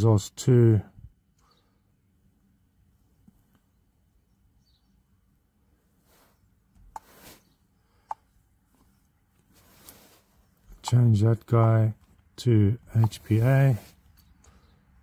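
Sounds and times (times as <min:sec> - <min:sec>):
soft rustles: 0:05.9 - 0:07.6, 0:08.6 - 0:10.8.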